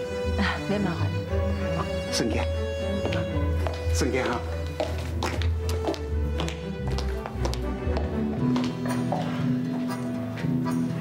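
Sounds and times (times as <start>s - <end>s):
background music with low tone: 0.0s - 11.0s
hard shoes clicking on floor: 3.0s - 9.4s.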